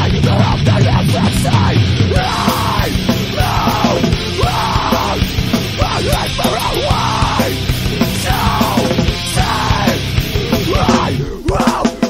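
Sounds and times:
distorted guitars: 0.0s - 12.0s
drums: 0.0s - 12.0s
harsh yelled vocals: 0.0s - 12.0s.

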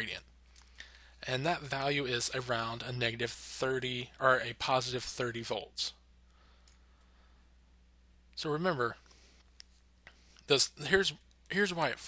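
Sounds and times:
faint low hum and hiss: 0.0s - 12.0s.

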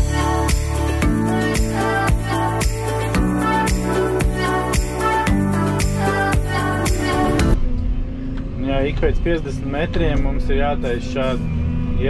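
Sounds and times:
music with a beat: 0.0s - 7.6s.

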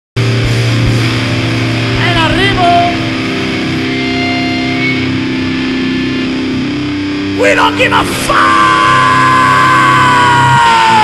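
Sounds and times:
bending high guitar note: 0.2s - 11.0s
heavy metal band playing: 0.2s - 11.0s.

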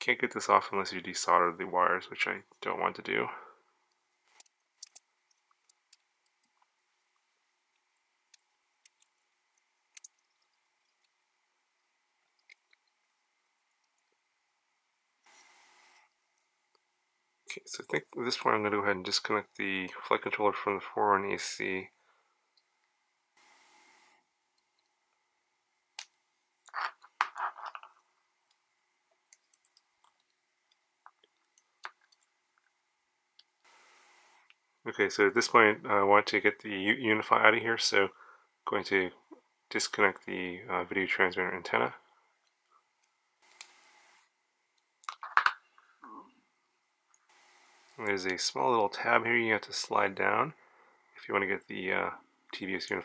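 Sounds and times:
short soft hiss: 15.2s - 16.1s, 23.4s - 24.2s, 33.6s - 34.5s, 43.4s - 44.3s, 47.3s - 48.2s.

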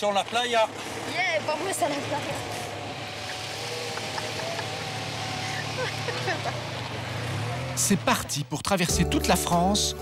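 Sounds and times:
car driving off: 0.0s - 9.0s.

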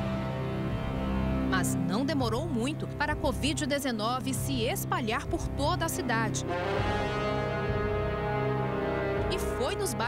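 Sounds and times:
background music sustained chord: 0.0s - 10.0s.

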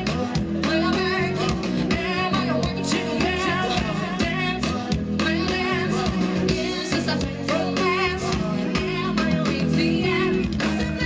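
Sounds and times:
live pop band playing: 0.0s - 11.0s
steady drum beat: 0.0s - 11.0s.

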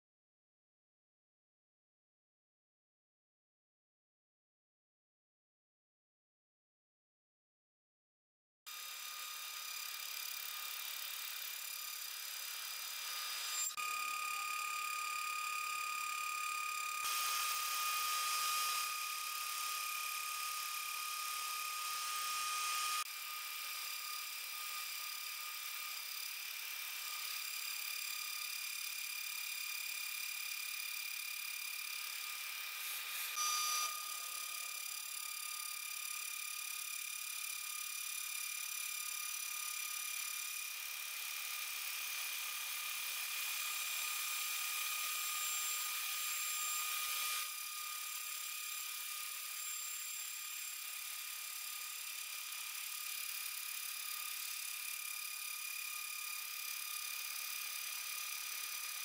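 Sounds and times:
milling spindle cutting aluminum: 8.7s - 59.0s.

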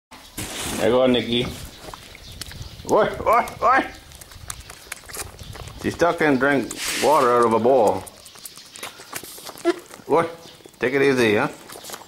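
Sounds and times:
goat kid sucking from bottle teat: 3.5s - 10.8s.

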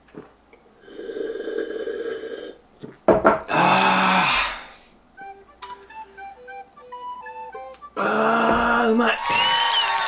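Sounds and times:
man gulping beer: 2.4s - 3.1s
man's raspy sigh of relief: 3.5s - 4.9s.

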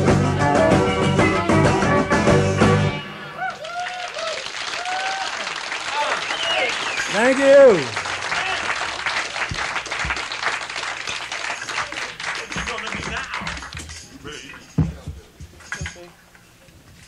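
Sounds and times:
audience applauding and cheering: 3.2s - 14.1s
whoops: 3.3s - 5.5s.

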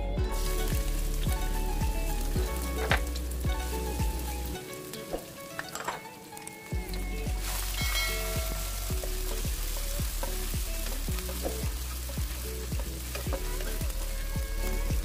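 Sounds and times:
background music with low beat: 0.0s - 5.5s, 6.7s - 15.0s
shallots and garlic sizzling in oil: 0.0s - 15.0s
spatula stirring in wok: 6.8s - 15.0s.

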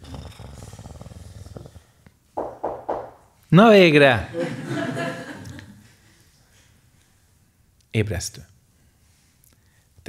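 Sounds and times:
man snoring: 0.0s - 2.0s.

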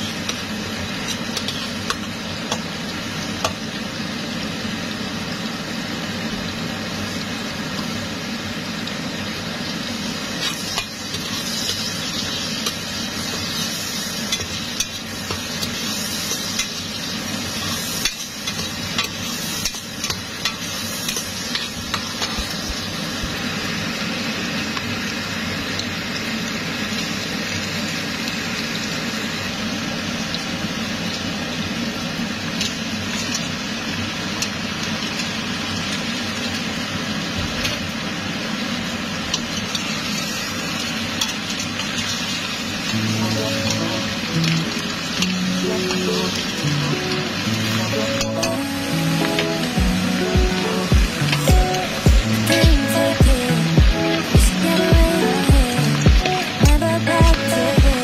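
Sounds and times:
vegetables sizzling in oil: 0.0s - 58.0s.

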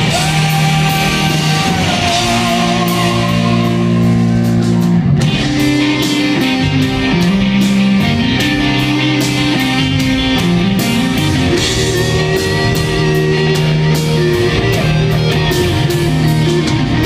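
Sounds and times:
bass and drums: 0.0s - 17.0s
distorted electric guitars: 0.0s - 17.0s.

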